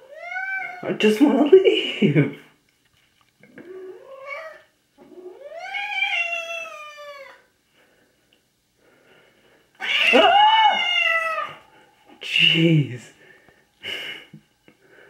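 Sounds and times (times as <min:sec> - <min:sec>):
cat yowling: 0:00.0 - 0:00.8, 0:03.6 - 0:07.5, 0:09.8 - 0:11.7.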